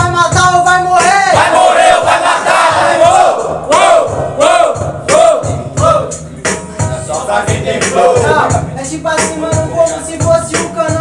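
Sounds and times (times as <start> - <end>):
crowd shouting and chanting: 1.0 - 6.2.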